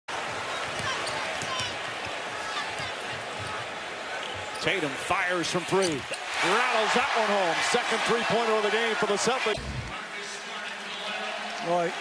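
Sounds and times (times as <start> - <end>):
crowd din: 6.2 - 10.1.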